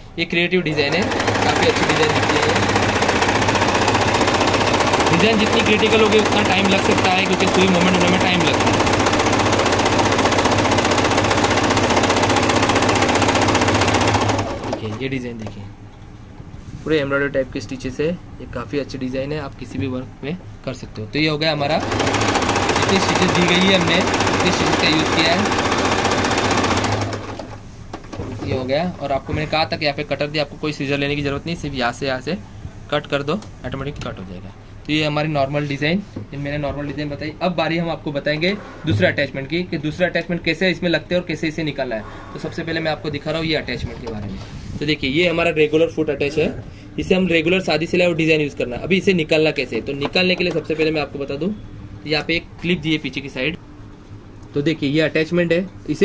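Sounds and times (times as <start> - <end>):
sewing machine running: 0.7 - 15.1, 21.7 - 27.6.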